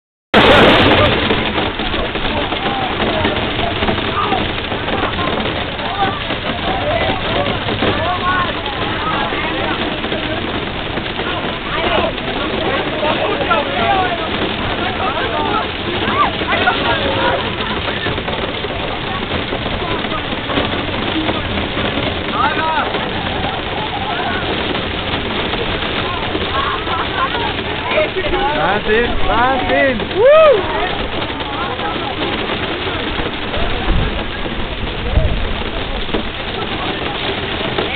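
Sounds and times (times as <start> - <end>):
heavy hail falling: 0.4 - 37.9
people chattering and calling out: 0.4 - 37.9.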